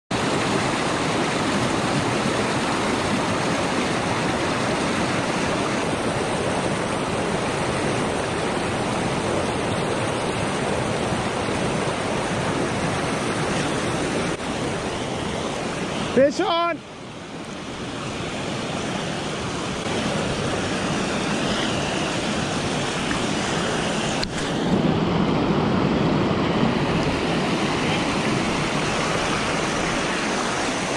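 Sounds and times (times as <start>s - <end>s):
river water rushing: 0.1s - 30.9s.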